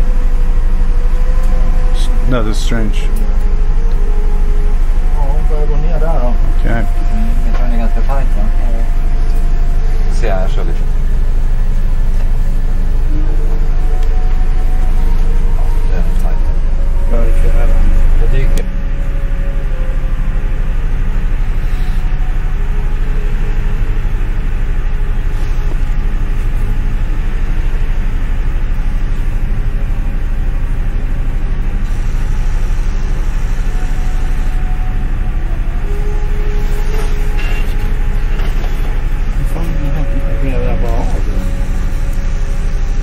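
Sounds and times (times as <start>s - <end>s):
ship engines droning: 0.0s - 43.0s.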